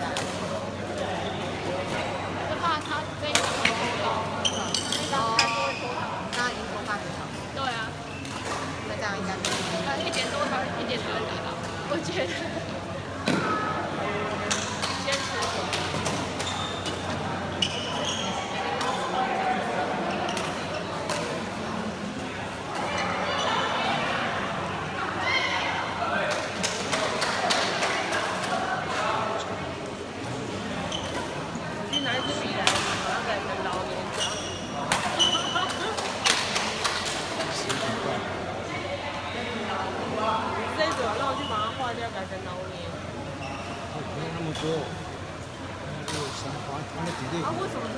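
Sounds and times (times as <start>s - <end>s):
people talking in a hall: 0.0s - 47.9s.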